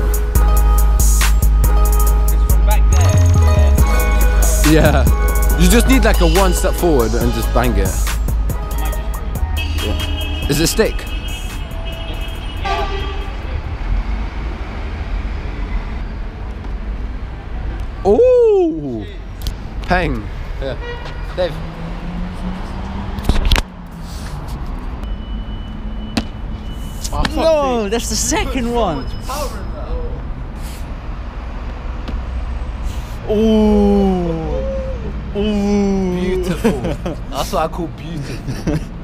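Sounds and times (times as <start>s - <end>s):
city background rumble: 0.0s - 39.0s.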